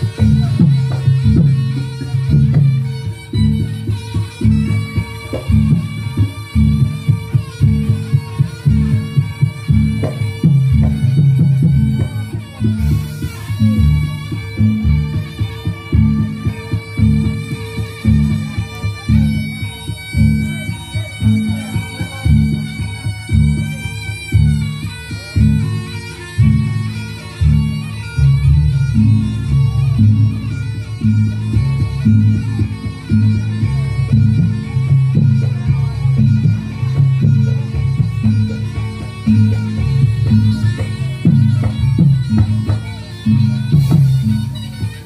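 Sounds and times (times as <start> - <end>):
drums and gongs beat: 0.0 - 45.0
shawm wailing melody: 0.0 - 45.0.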